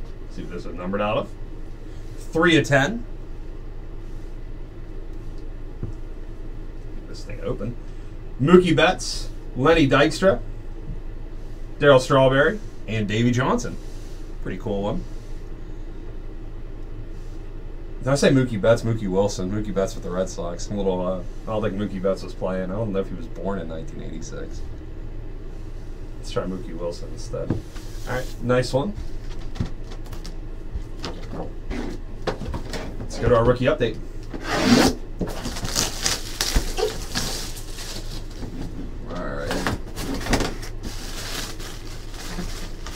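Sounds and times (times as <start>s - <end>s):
low hum with faint hiss: 0.0s - 42.9s.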